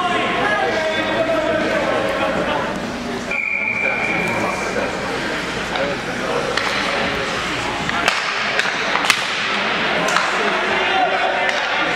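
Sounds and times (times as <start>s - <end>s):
rink arena noise: 0.0s - 11.9s
hockey sticks clacking: 6.4s - 11.9s.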